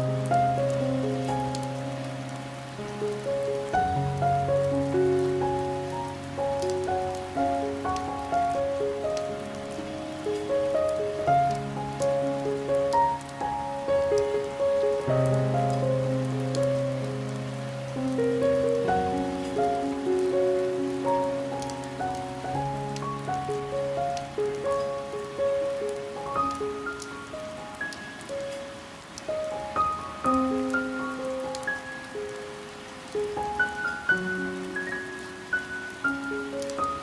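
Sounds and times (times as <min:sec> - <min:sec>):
slow piano music: 0:00.0 - 0:37.0
steady rain: 0:00.0 - 0:37.0
raindrops ticking on window: 0:00.1 - 0:17.5.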